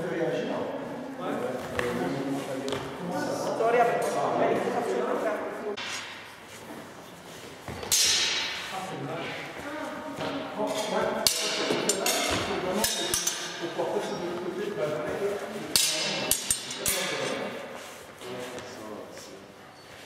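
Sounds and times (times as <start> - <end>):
steel swords clashing: 7.9 - 8.6, 15.7 - 17.5.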